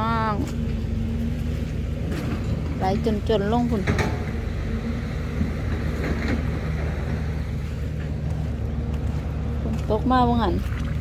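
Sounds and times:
engine throbbing steadily: 0.0s - 11.0s.

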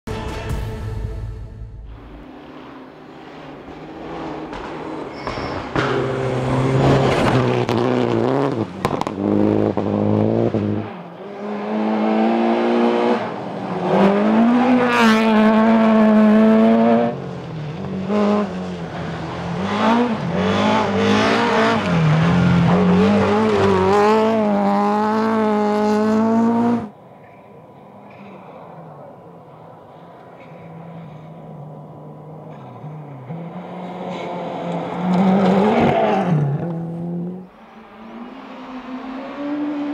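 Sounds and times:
rally cars revving past: 2.2s - 27.0s, 27.7s - 39.9s.

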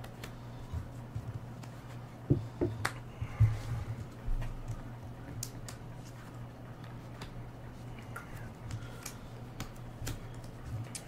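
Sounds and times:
playing cards clicking and tapping: 0.0s - 11.0s
steady low hum: 0.0s - 11.0s.

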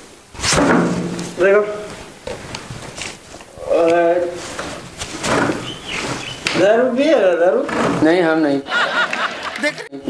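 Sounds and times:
soft knocks and rustles: 0.4s - 6.7s.

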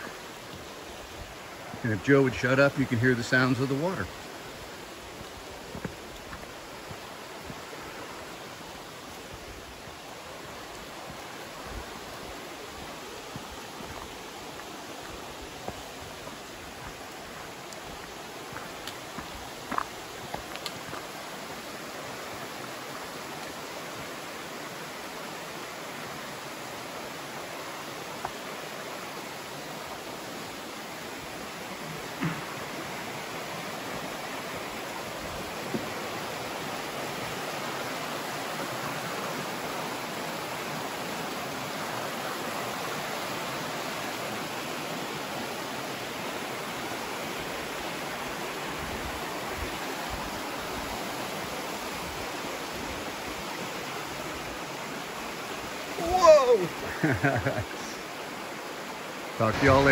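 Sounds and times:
creek rushing over boulders: 0.0s - 59.9s.

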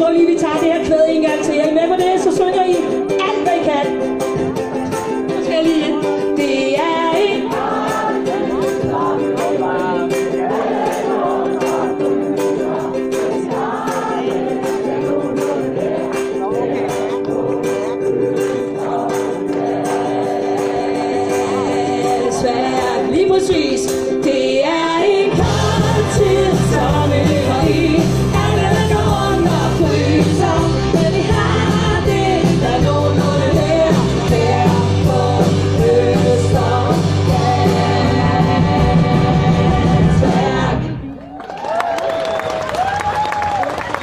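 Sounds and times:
live band playing: 0.0s - 41.2s
person singing: 4.7s - 41.1s
bass and drums: 25.3s - 41.0s.

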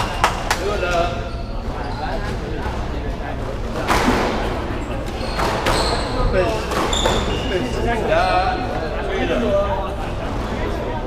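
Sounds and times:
knocks echoing in squash court: 0.0s - 9.2s.

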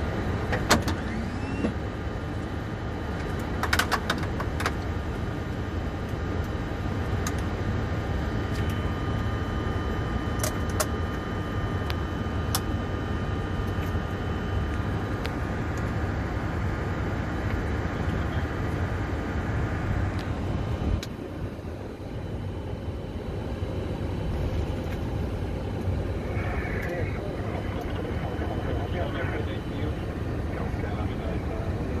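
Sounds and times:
aircraft low rumble: 0.0s - 32.0s
thin whine: 7.9s - 32.0s.

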